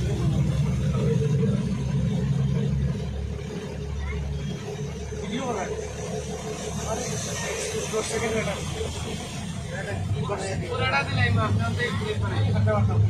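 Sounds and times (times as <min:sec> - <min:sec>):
vehicle engines running: 0:00.0 - 0:13.0
water sloshing around vehicles: 0:00.0 - 0:13.0.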